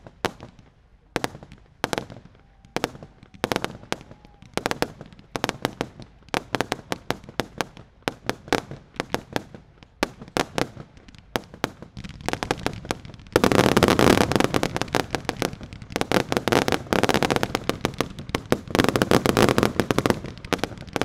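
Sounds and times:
fireworks banging and bursting: 0.0s - 21.0s.

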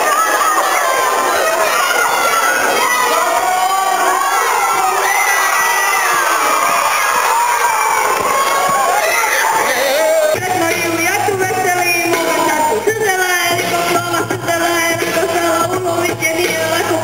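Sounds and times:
children shouting and cheering: 0.0s - 17.0s.

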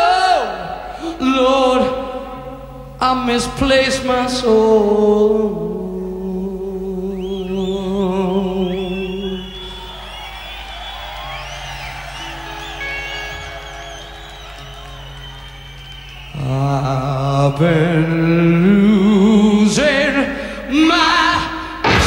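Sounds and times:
man singing with vibrato: 0.0s - 9.8s, 16.3s - 22.0s
electric guitar with vibrato: 11.8s - 17.5s.

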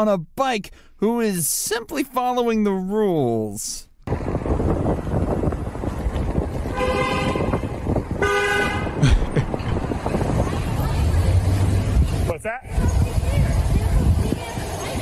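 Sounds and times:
wind: 0.0s - 15.0s
street traffic rumble: 3.9s - 15.0s
car horn honking: 6.6s - 9.0s.

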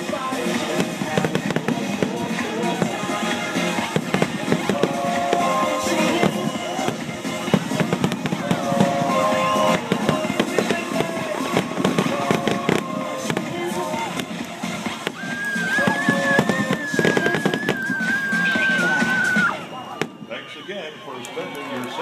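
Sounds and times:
fireworks bursting: 0.0s - 22.0s
music playing: 0.0s - 22.0s.

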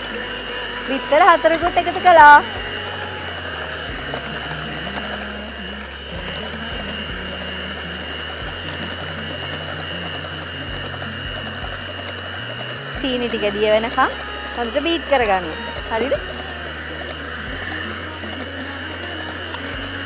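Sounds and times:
electric hand mixer whining: 0.0s - 20.0s
faint background music: 0.0s - 20.0s.

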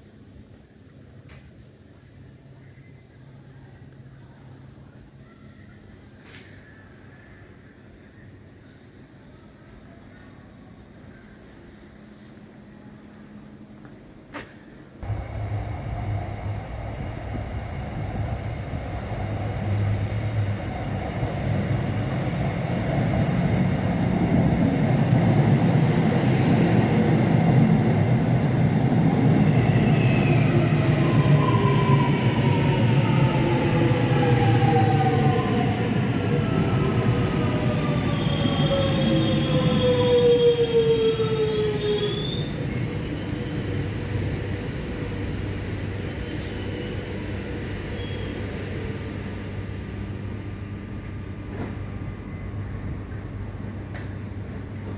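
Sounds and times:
electric train rumble and whine: 0.0s - 54.9s
train brake squeal: 41.6s - 49.6s.

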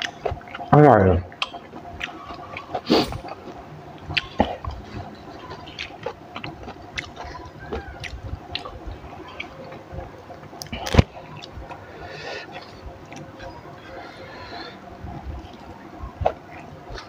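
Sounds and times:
person chewing crunchy greens: 0.0s - 17.0s.

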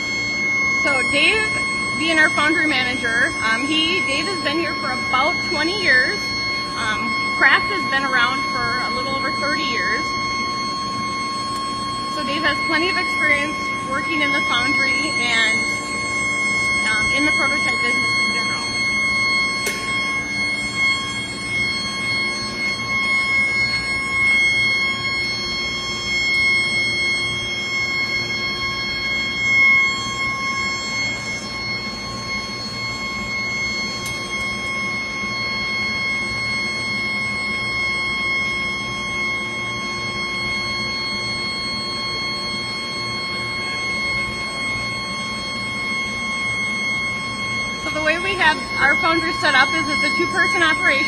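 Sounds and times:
furnace high-pitched whine: 0.0s - 51.0s
low shop hum: 0.0s - 51.0s.

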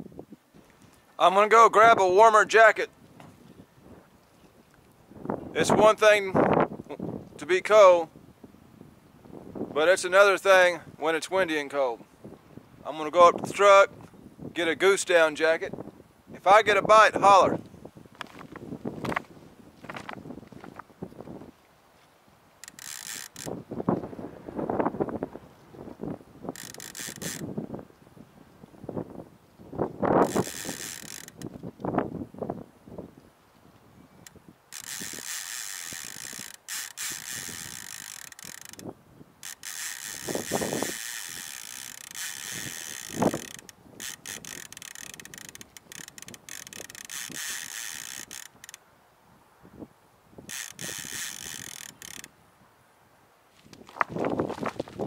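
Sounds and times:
wind on microphone: 0.0s - 1.0s, 1.7s - 11.4s, 12.0s - 21.6s, 22.6s - 52.4s, 53.6s - 55.0s
reel clicker ratcheting: 22.6s - 23.6s, 26.5s - 27.5s, 30.2s - 31.7s, 34.2s - 48.8s, 50.5s - 52.3s.

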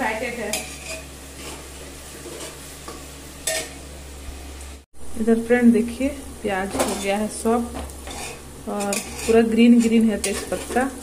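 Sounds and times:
onions sizzling in oil: 0.0s - 11.0s
metal ladle scraping pot: 0.5s - 2.7s, 3.4s - 3.8s, 8.0s - 10.8s.

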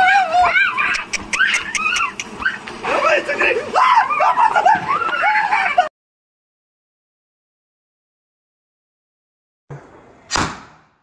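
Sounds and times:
high-pitched rising and falling cries: 0.0s - 2.7s, 3.7s - 5.9s.

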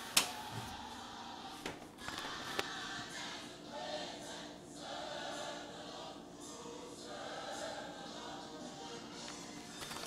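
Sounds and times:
choir singing held notes: 0.2s - 9.5s.

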